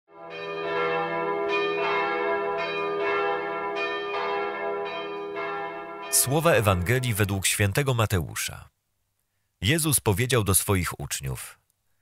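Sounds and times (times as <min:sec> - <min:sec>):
bells ringing in a peal: 0:00.1 - 0:07.4.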